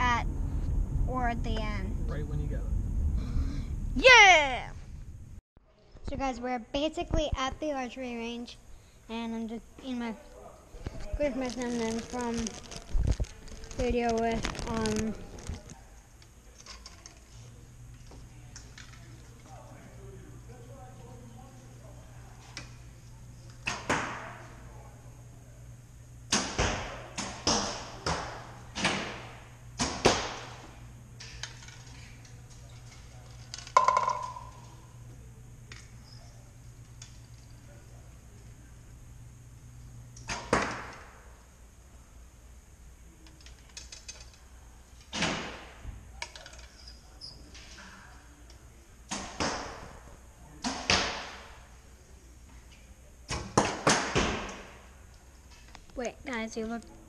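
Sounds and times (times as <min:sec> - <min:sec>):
arrow strikes: 0:26.3 - 0:30.6.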